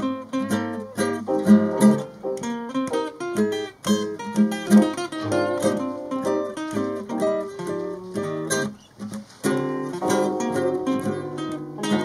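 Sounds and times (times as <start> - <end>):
nylon-string guitar: 0.0 - 12.0
steel-string acoustic guitar: 0.0 - 12.0
electronic keyboard: 0.9 - 3.9, 4.7 - 7.4, 9.9 - 12.0.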